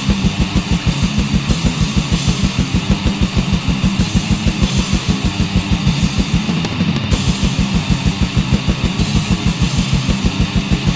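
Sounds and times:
distorted electric guitars: 0.0s - 10.9s
fast kick drum: 0.0s - 10.9s.

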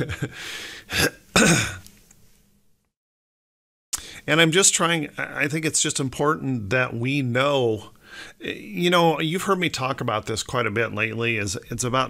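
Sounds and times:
man clearing his throat: 0.9s - 1.8s.

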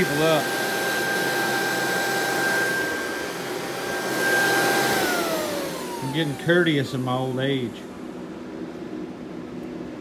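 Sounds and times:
blower fan whine: 0.0s - 10.0s.

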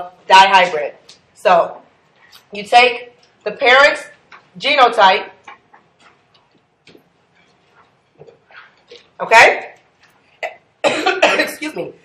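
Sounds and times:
person coughing: 10.4s - 11.8s.

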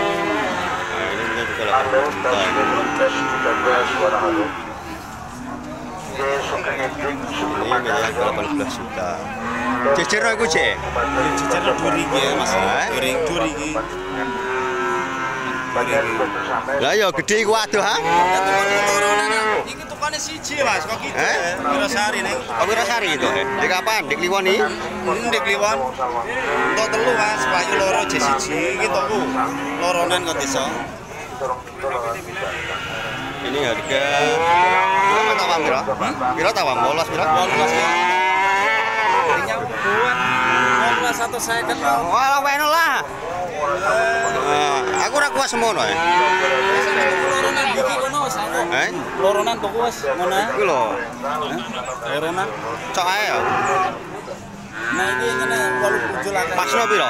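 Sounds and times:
long low cow call: 0.0s - 5.1s, 9.2s - 16.7s, 37.3s - 41.3s
cattle mooing: 0.0s - 5.2s, 6.2s - 16.9s, 17.8s - 19.7s, 21.6s - 31.0s, 32.2s - 43.0s, 43.7s - 57.0s
people talking: 0.0s - 14.5s, 15.3s - 57.0s.

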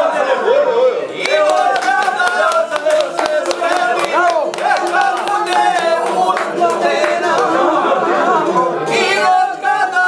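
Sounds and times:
people talking and calling out: 0.0s - 10.0s.

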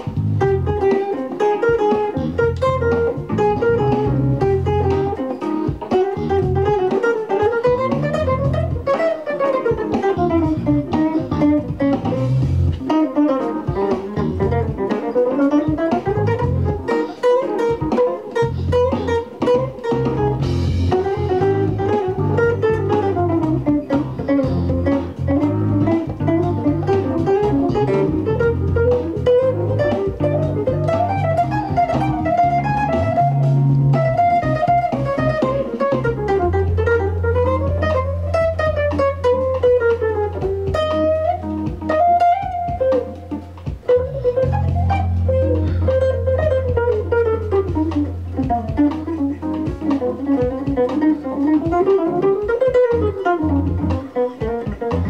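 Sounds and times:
held low bass notes: 0.0s - 0.9s, 2.1s - 5.2s, 6.2s - 6.8s, 7.6s - 8.9s, 10.1s - 12.8s, 14.1s - 14.8s, 15.7s - 16.9s, 18.4s - 55.0s
electric guitar jazz solo: 0.0s - 55.0s.

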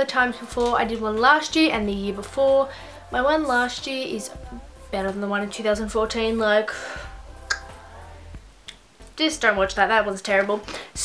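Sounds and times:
low steady hum: 0.0s - 10.2s.

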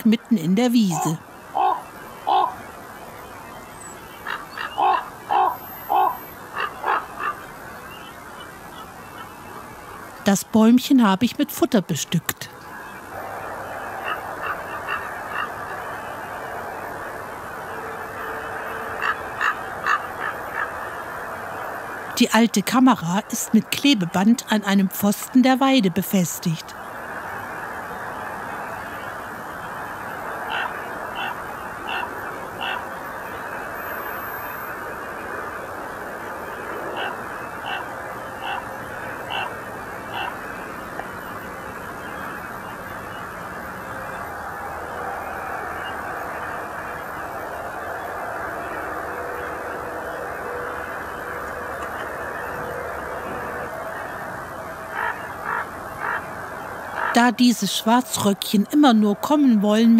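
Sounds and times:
crows cawing: 1.5s - 2.8s, 4.2s - 7.5s, 13.7s - 16.1s, 18.9s - 21.0s, 30.3s - 33.0s, 36.9s - 40.5s, 54.8s - 57.2s.

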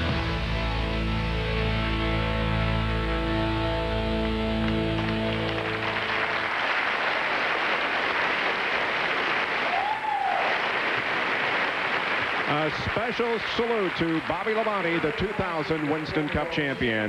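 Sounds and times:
audience applauding: 3.8s - 17.0s.

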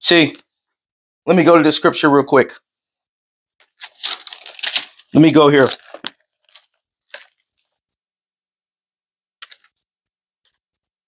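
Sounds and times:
pages turning: 3.6s - 7.8s, 9.4s - 9.8s.

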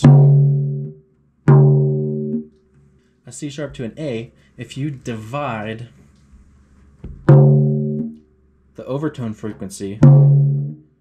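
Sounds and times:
drum struck with felt mallet: 0.0s - 2.6s, 7.0s - 8.2s, 10.0s - 10.8s.

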